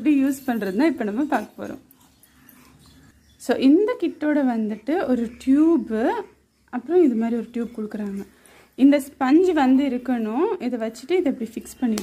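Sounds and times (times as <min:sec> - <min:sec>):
woman's voice: 0:00.0 - 0:02.0, 0:03.4 - 0:12.0.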